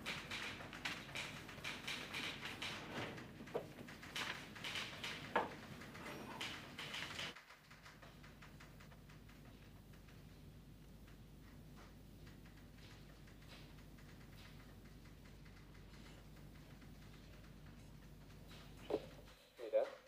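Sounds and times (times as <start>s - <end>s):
clatter of small clicks and knocks: 0.0s - 20.0s.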